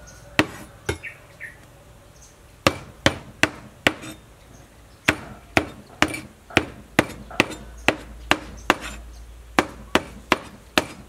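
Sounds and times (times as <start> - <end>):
meat cleaver chopping on wooden board: 5.1 - 9.0, 9.6 - 11.0.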